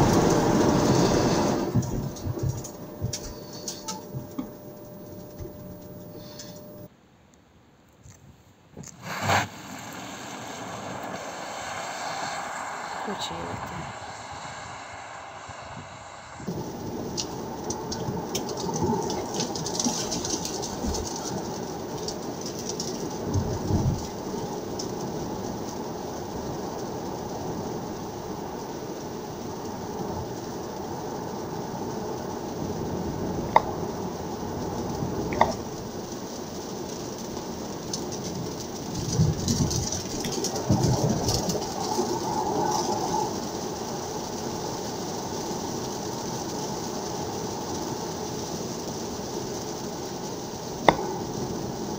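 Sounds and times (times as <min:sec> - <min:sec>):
tyres hissing on wet road: 0:00.0 - 0:06.9, 0:08.8 - 0:51.9
road and tyre noise in cabin: 0:00.0 - 0:07.0, 0:07.8 - 0:51.9.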